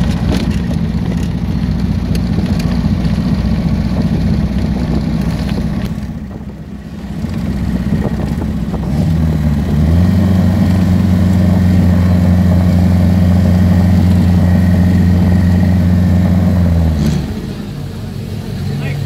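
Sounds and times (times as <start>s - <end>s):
car engine at steady revs: 0.0s - 19.0s.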